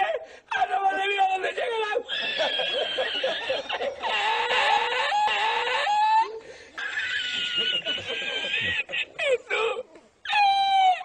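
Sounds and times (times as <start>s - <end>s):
man laughing hard: 2.1s - 6.0s, 6.8s - 9.8s.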